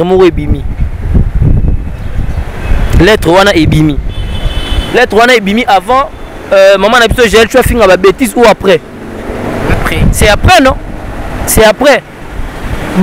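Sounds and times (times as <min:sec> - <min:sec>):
people talking: 0:03.0 - 0:04.0, 0:05.0 - 0:08.8, 0:09.7 - 0:10.8, 0:11.5 - 0:12.0.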